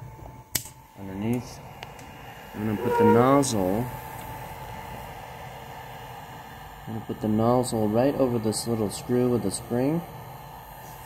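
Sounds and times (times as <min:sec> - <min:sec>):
printer cooling fans humming: 0:00.0 - 0:11.0.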